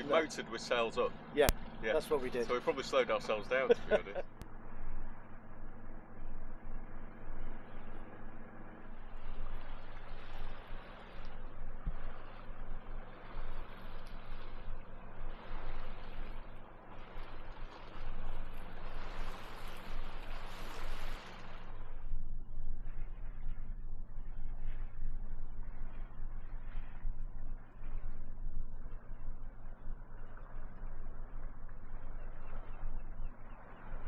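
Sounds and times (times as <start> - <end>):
boat engine humming: 0.0 - 34.0
water rushing along hull: 0.0 - 34.0.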